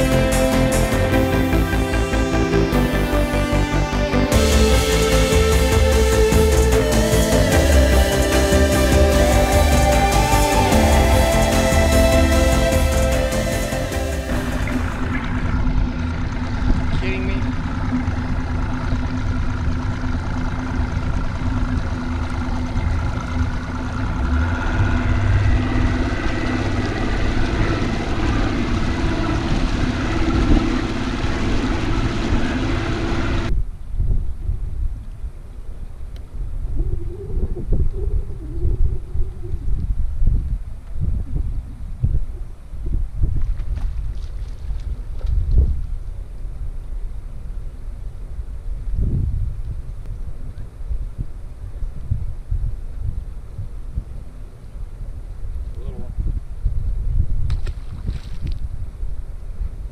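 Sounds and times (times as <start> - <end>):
outboard motor droning: 0.0 - 33.5
water noise: 4.3 - 33.5, 36.4 - 47.0
wind buffeting microphone: 24.0 - 47.6, 48.3 - 59.9.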